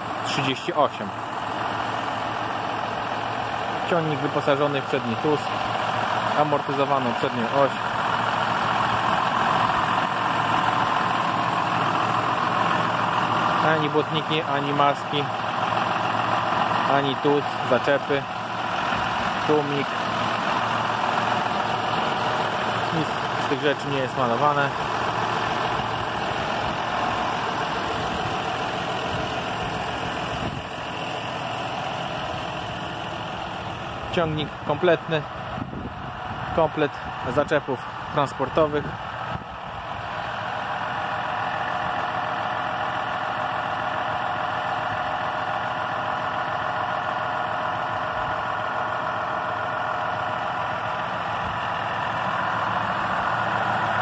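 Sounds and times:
tractor diesel engine idling: 0.0s - 54.0s.

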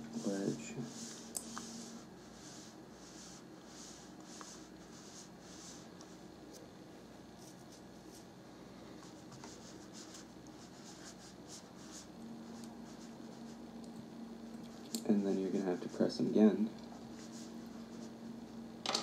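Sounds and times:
low steady hum: 0.0s - 19.0s.

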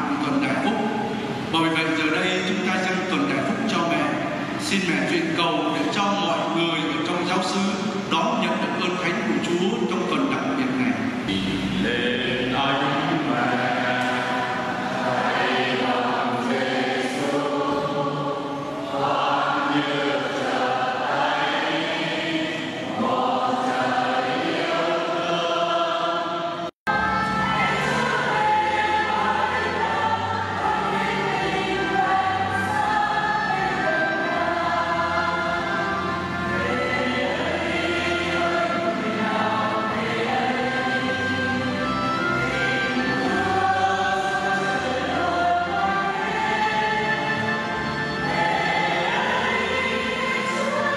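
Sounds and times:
deep accompaniment: 0.0s - 18.2s
church choir singing a hymn: 0.0s - 50.9s.

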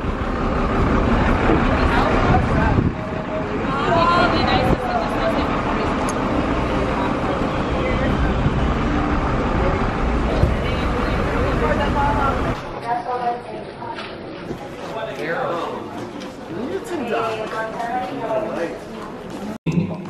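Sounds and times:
low street rumble: 0.0s - 20.0s.

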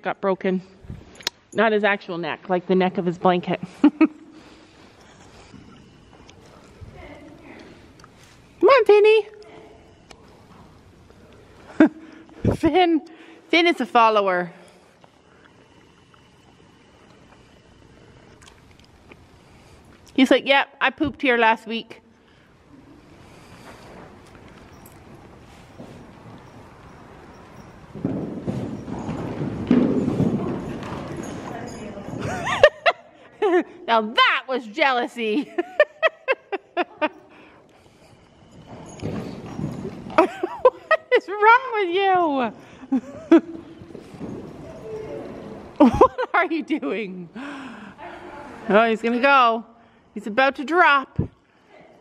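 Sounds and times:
horse hoofbeats on sand: 23.5s - 32.2s.

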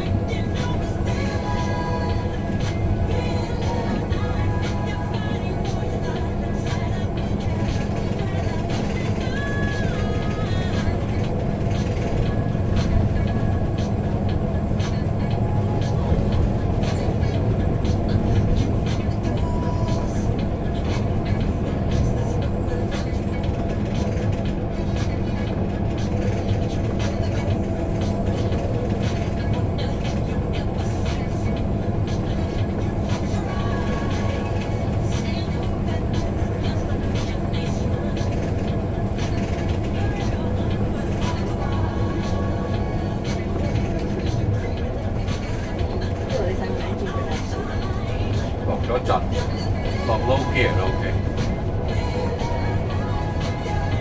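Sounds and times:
car road and engine noise: 0.0s - 54.0s
music playing: 0.0s - 54.0s.

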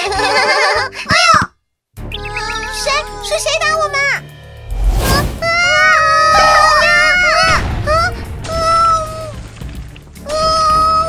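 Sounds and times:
background music: 2.0s - 11.0s.

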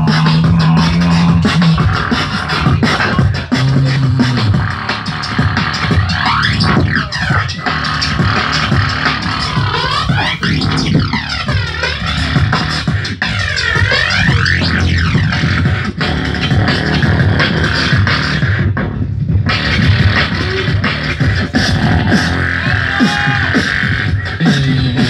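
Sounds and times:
electronic music with low beat: 0.0s - 25.0s.

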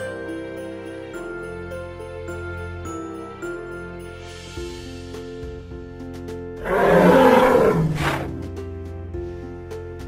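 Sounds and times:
background music: 0.0s - 10.0s
beast-like roar: 6.6s - 8.3s.

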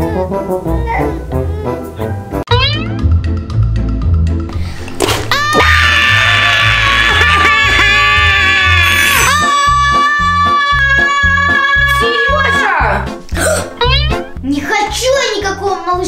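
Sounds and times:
music with steady beat: 2.4s - 4.6s
woman imitating baby crying: 6.4s - 13.0s, 13.6s - 14.3s.

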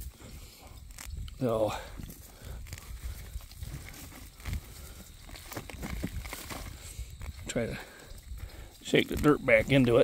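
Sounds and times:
weeds rustling as pulled: 0.0s - 7.6s.

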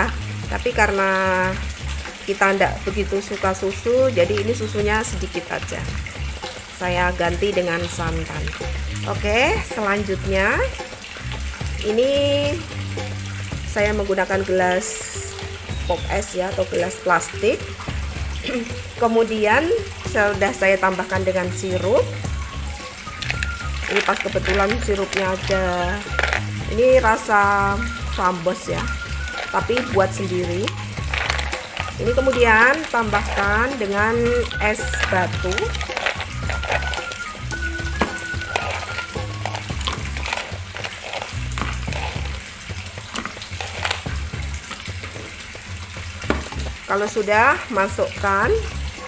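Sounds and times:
background music with low beat: 3.7s - 46.9s
ice cubes and spoon clicking: 22.7s - 44.9s.

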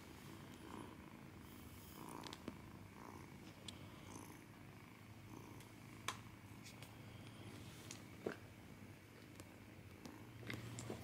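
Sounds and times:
kitten purring: 0.0s - 11.0s.

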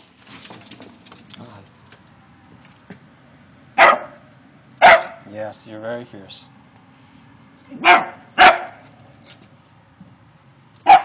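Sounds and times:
dog barking: 3.8s - 4.2s, 4.8s - 5.3s, 7.8s - 8.8s.

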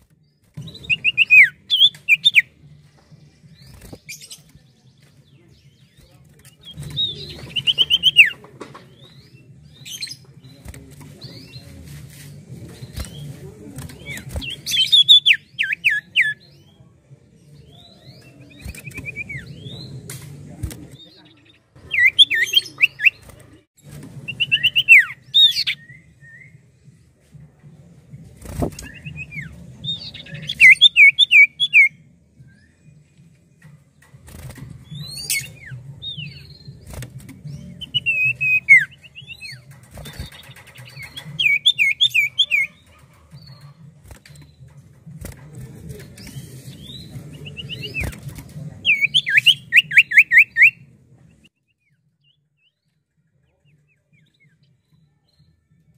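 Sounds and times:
bird singing whistled notes: 0.6s - 2.6s, 6.6s - 11.7s, 14.0s - 16.8s, 21.0s - 23.2s, 24.3s - 26.6s, 28.8s - 32.8s, 37.5s - 42.8s, 48.8s - 50.8s.

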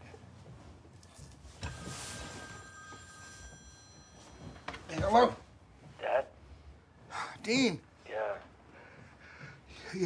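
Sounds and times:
telephone ringing: 1.6s - 5.4s.

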